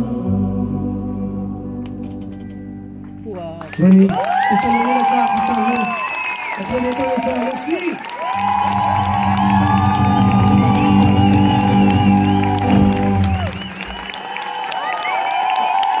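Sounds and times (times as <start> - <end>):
crowd cheering: 3.6 - 16.0.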